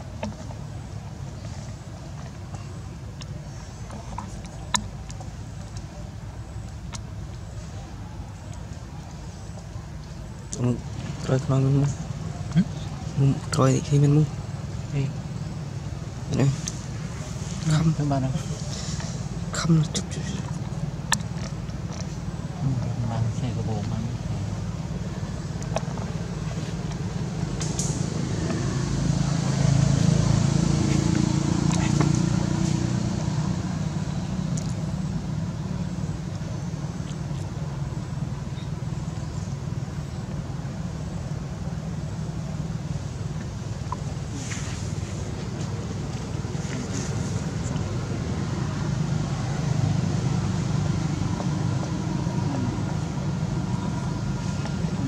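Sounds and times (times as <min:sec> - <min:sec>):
motor vehicle engine rumble: 0:00.0 - 0:55.0.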